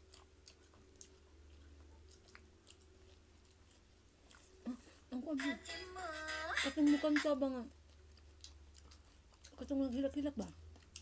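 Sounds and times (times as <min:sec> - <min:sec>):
person chewing: 0:00.0 - 0:05.1, 0:07.7 - 0:11.0
low steady hum: 0:00.0 - 0:11.0.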